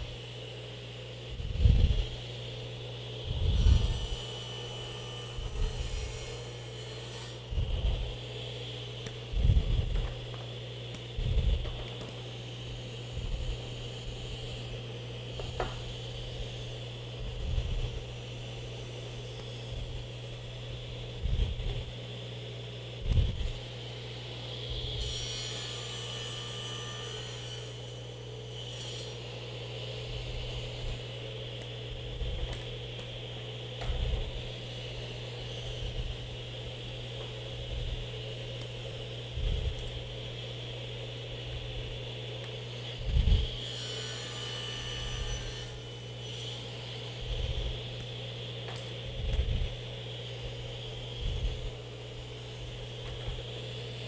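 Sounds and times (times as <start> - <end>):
table saw running: 0.0 - 54.0
saw cutting wood hissing: 1.4 - 22.2, 23.0 - 54.0.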